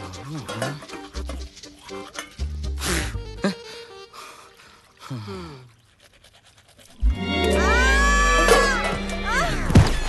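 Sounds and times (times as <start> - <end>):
woman crying out: 7.6 - 9.7.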